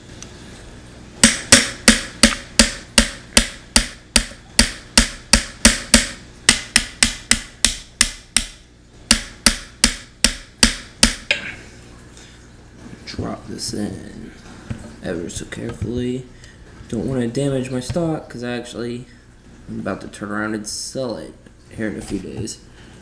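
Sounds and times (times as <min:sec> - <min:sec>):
tool tapping pins into metal: 0:01.2 - 0:11.6.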